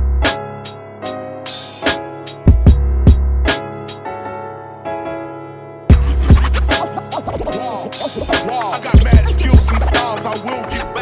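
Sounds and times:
piano loop: 0.0 - 11.0
heavy kick and bass drum beat: 1.6 - 3.6, 5.9 - 11.0
scratch-like pitch swoops: 5.9 - 10.8.

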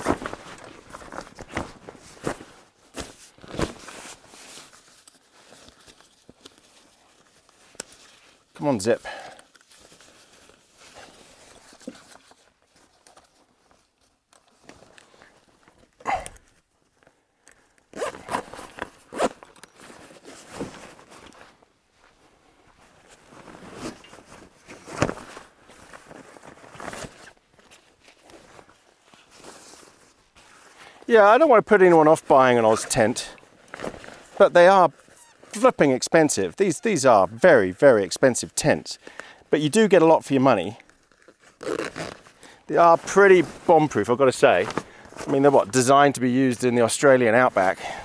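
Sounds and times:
fabric rustling: 0.0 - 8.6, 9.5 - 17.2, 18.0 - 35.6, 40.6 - 45.8
zip being pulled closed: 17.9 - 19.7, 41.5 - 42.6.

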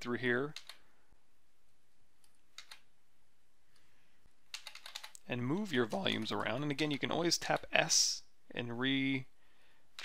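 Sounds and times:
low room hiss: 0.0 - 10.0
computer keyboard clicks: 2.2 - 2.8, 4.5 - 5.2.

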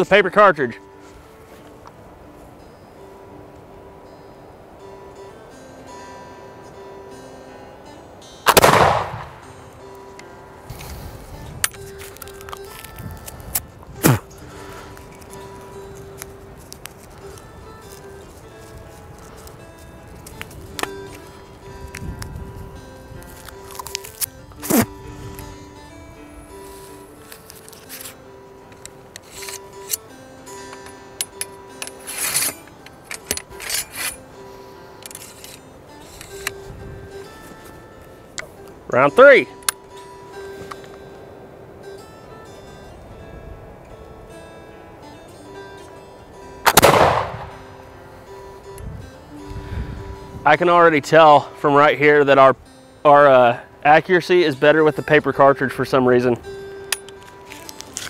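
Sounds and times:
background music: 0.0 - 58.0
musket gunshot with echo: 8.5 - 9.4, 46.6 - 47.6
metallic clicks of reloading: 30.7 - 34.2.

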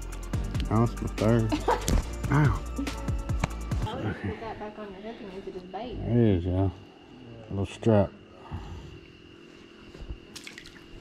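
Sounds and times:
faint steady hum: 0.0 - 11.0
water drips: 10.3 - 11.0.

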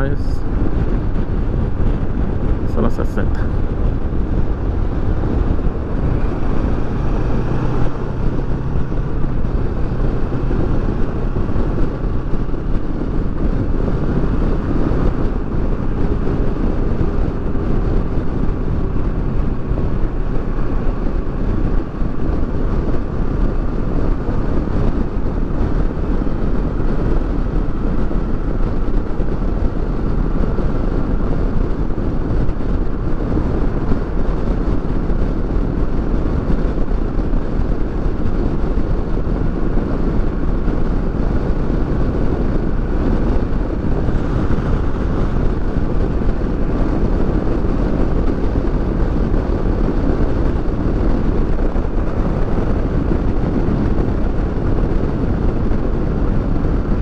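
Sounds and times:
motorcycle engine cruising: 0.0 - 57.0
wind and road noise: 0.0 - 57.0.

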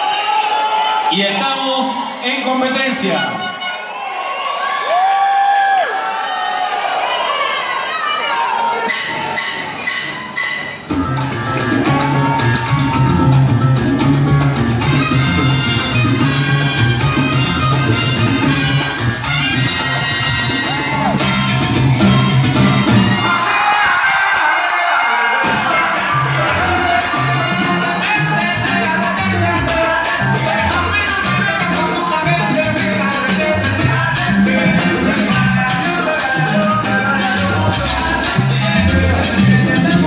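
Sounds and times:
loud salsa music over speakers: 0.0 - 4.2, 8.4 - 40.0
faint crowd noise: 0.0 - 40.0
ringing percussion strikes: 8.8 - 11.9.

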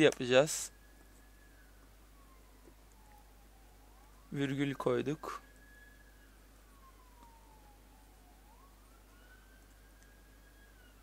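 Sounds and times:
distant siren wailing: 0.0 - 11.0.

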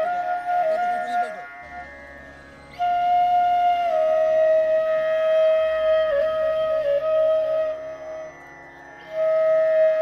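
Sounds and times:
flute long note: 0.0 - 2.0, 2.7 - 10.0.

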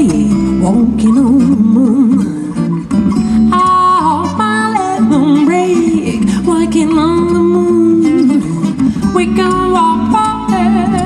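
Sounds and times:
acoustic bass guitar: 0.0 - 11.0
acoustic guitar: 0.0 - 11.0
woman singing: 0.0 - 11.0.

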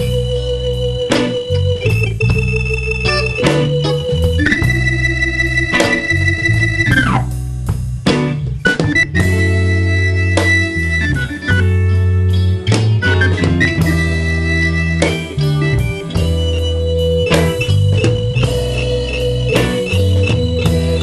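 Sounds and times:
bass line: 0.0 - 21.0
electric organ solo: 0.0 - 21.0.

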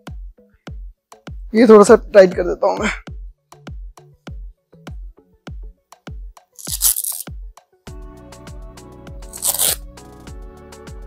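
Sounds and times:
hook-and-loop strap ripping: 6.6 - 7.3, 9.3 - 9.8.

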